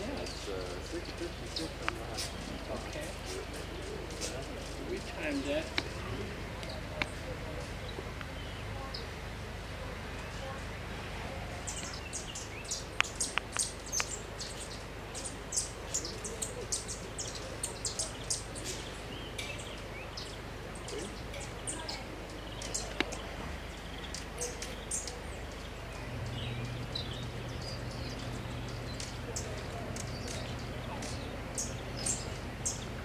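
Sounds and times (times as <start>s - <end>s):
low hum: 18.9s - 33.0s.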